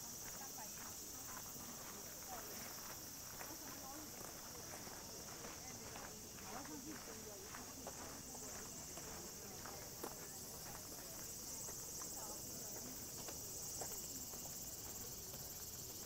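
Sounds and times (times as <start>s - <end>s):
cicadas buzzing: 0.0s - 16.0s
faint distant voices: 0.0s - 16.0s
footsteps: 0.2s - 15.4s.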